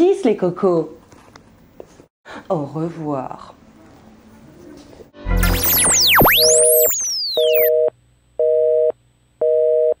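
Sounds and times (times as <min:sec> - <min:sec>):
electronic swooping sweeps: 0:05.4 - 0:07.7
two-tone electronic beep: 0:05.4 - 0:07.7.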